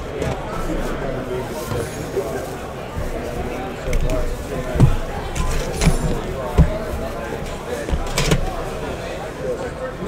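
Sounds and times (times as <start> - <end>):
plastic wrapping rustle: 0.0 - 9.6
background chatter: 0.0 - 10.0
cardboard boxes thumping: 4.2 - 7.2.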